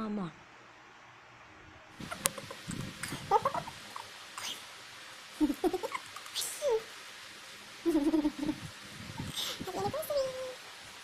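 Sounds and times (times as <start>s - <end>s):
woman's stifled laughter: 5.4s - 6.0s, 7.9s - 8.7s.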